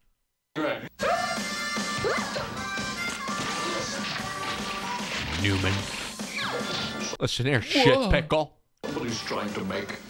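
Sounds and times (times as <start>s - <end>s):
tv promo music: 0.6s - 7.8s, 8.8s - 10.0s
crashing and whacking effects: 2.9s - 7.1s.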